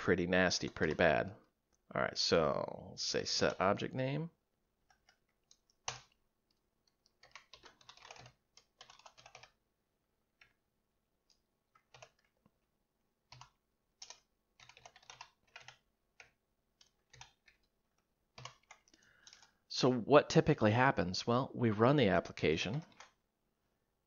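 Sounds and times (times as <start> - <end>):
computer keyboard typing: 4.8 - 9.6, 11.3 - 12.4, 13.2 - 19.6, 22.6 - 23.2.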